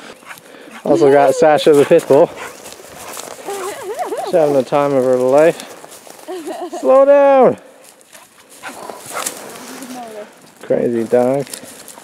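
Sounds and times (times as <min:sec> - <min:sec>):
footsteps crunching through shrubs: 0:00.0 - 0:12.0.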